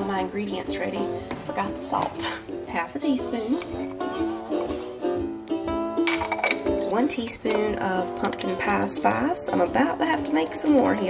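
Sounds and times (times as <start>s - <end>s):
light music with plucked strings: 0.0s - 11.0s.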